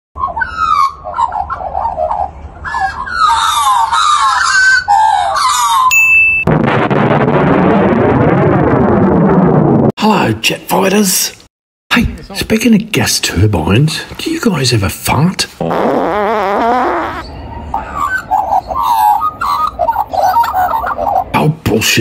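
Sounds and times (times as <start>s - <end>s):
magpies carolling: 0.2s - 5.9s, 17.2s - 21.4s
short electronic beep: 5.9s - 6.5s.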